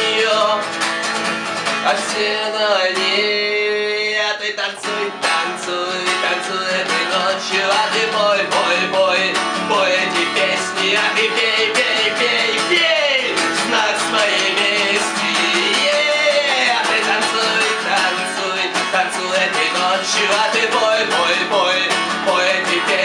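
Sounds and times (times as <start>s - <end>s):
man singing loudly: 0.0s - 0.7s, 1.8s - 23.0s
acoustic guitar strumming: 0.0s - 23.0s.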